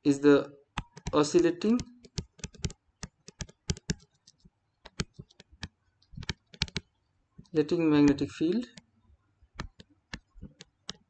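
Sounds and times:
stylus clicking on touchscreen: 0.7s - 11.0s.

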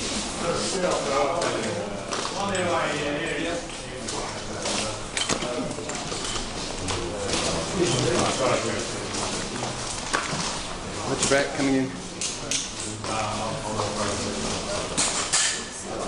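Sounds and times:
people chattering: 0.0s - 16.0s.

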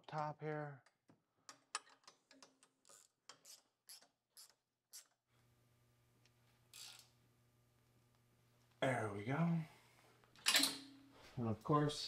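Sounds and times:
faint steady hum: 5.3s - 12.0s.

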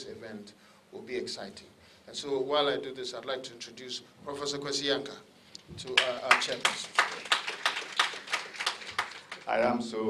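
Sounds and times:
audience applauding: 5.9s - 9.7s.

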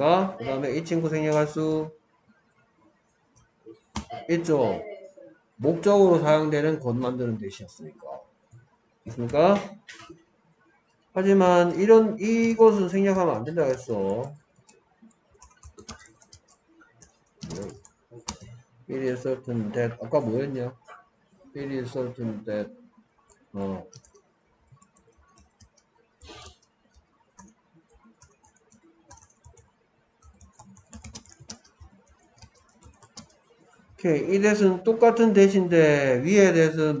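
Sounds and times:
faint computer keyboard typing: 8.1s - 10.2s, 11.9s - 18.7s, 23.2s - 34.5s.

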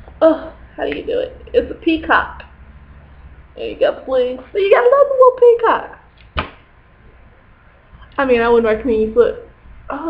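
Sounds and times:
brief thump: 6.4s - 6.6s.

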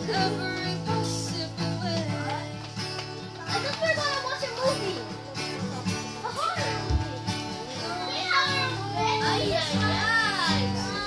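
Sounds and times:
girl singing: 0.0s - 5.2s, 6.2s - 11.0s
acoustic guitar chords: 0.0s - 11.0s.

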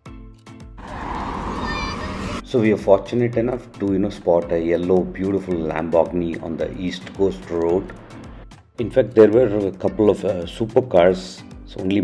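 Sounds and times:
traffic noise: 0.8s - 2.4s
brief high squeal: 1.5s - 2.4s
music with plucked notes: 2.5s - 12.0s.

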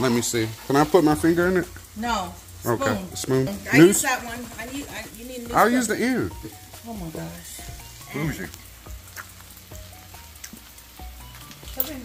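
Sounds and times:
ground beef sizzling in a pan: 0.0s - 12.0s.

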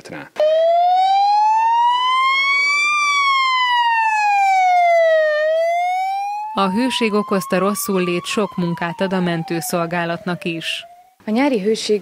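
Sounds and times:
ambulance siren wailing: 0.4s - 11.2s.

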